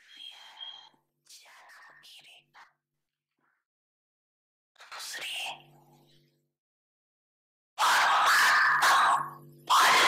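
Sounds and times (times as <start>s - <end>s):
person whispering: 0.0s - 2.8s, 4.8s - 5.8s.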